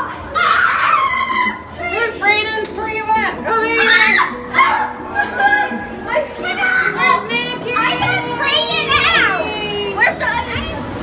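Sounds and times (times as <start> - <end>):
children shrieking and squealing: 0.0 - 2.2, 3.7 - 10.3
background music: 0.0 - 11.0.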